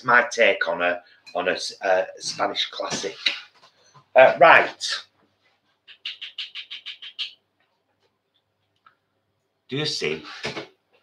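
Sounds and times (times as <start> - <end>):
bird chirping: 5.8 - 7.5.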